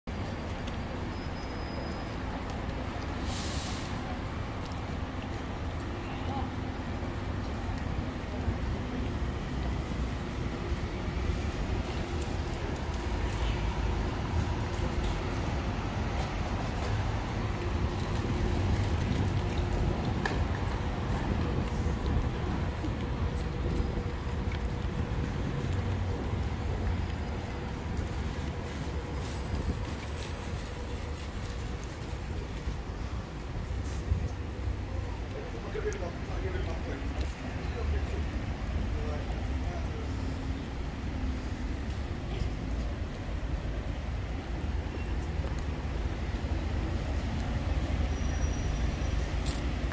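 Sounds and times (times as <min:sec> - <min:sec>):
road traffic rumble: 0:00.0 - 0:49.9
passers-by talking: 0:32.2 - 0:47.9.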